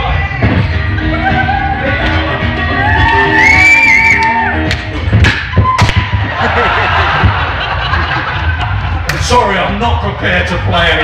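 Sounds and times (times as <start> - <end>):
pop song over loudspeakers: 0.0 - 5.8.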